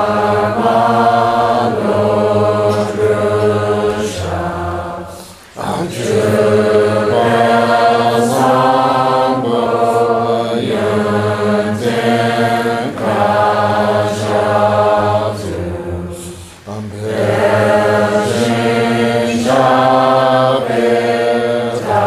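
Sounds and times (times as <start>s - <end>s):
group chanting in unison: 0.0s - 22.0s.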